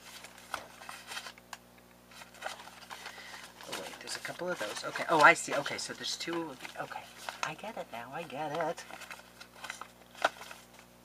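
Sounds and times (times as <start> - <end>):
paper cards rustling: 0.0 - 1.5, 2.1 - 11.0
faint steady hum: 0.0 - 11.0.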